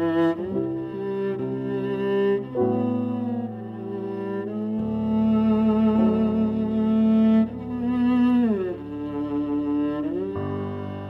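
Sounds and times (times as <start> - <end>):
cello playing long notes: 0.0 - 11.0.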